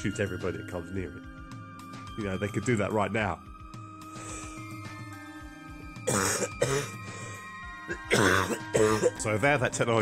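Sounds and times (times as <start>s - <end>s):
quiet background music: 0.0s - 10.0s
man coughing: 6.0s - 7.0s, 7.9s - 9.2s.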